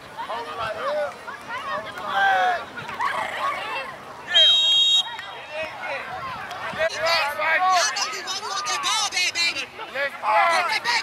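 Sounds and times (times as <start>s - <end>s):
referee's whistle blast: 4.3s - 5.2s.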